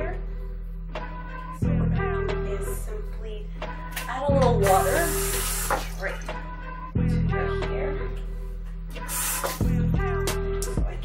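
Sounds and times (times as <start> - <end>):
hiss: 4.8 - 5.8, 9.0 - 9.6.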